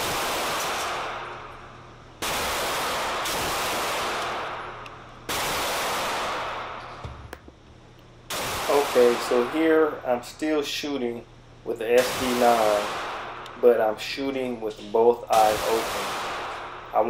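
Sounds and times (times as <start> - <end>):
pistol shots echoing indoors: 0.0 - 7.0, 8.3 - 10.0, 12.0 - 17.0.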